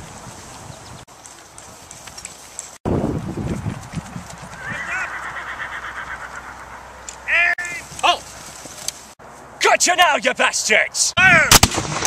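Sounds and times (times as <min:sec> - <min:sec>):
men yelling: 0:04.6 - 0:08.2, 0:09.6 - 0:11.6.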